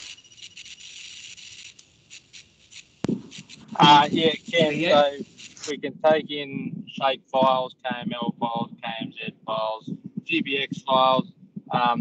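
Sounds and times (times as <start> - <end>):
faint high hiss: 0.0 - 12.0.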